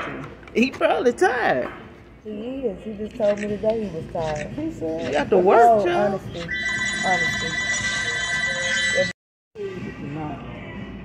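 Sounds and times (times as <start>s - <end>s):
voices talking: 0.6s - 9.1s
background music: 2.2s - 11.0s
high electronic ringing tone: 6.5s - 9.2s.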